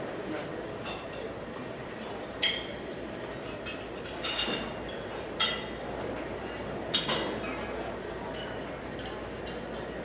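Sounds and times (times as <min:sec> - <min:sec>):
seated crowd murmur: 0:00.0 - 0:10.0
glasses and cutlery clinking: 0:00.2 - 0:10.0.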